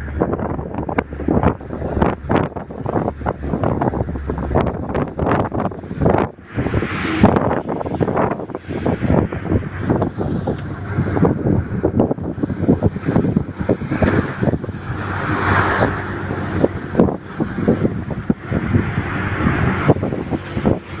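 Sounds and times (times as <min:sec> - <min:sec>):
truck running and road noise: 0:00.0 - 0:21.0
wind buffeting microphone: 0:00.0 - 0:21.0.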